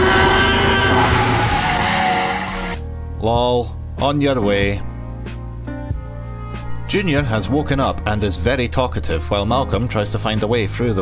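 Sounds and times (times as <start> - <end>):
dinosaur roar: 0.0 - 2.8.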